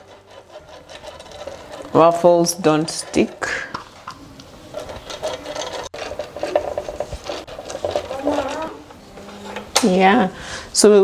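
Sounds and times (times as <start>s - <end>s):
pastry brush rubbing on grid plates: 0.0s - 9.7s.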